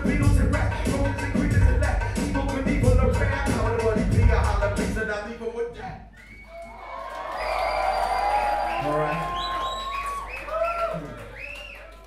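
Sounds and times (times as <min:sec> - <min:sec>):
live hip hop song: 0:00.0 - 0:05.6
crowd cheering and whooping: 0:06.3 - 0:12.0.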